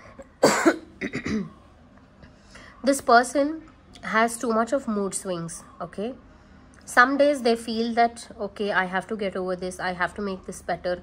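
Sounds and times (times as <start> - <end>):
woman coughing: 0.4 - 1.6.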